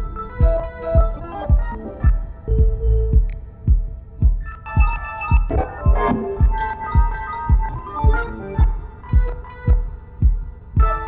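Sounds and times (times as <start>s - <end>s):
deep kick drum: 0.0s - 11.0s
held humming tones: 0.0s - 11.0s
sparse higher notes: 0.0s - 11.0s.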